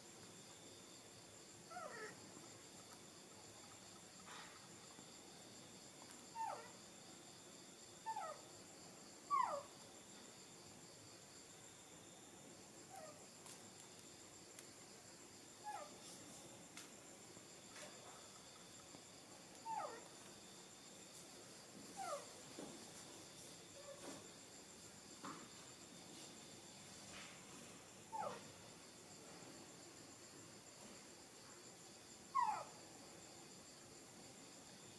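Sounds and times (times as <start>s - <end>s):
baby monkey crying: 32.4s - 32.7s.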